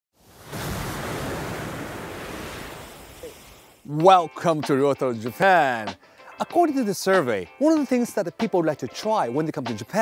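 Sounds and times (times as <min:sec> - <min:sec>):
surf breaking against rocks: 0:00.2 - 0:03.8.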